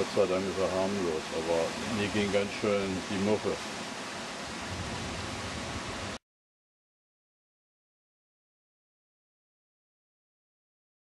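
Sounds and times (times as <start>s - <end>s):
surf breaking on rocks: 4.5s - 6.2s.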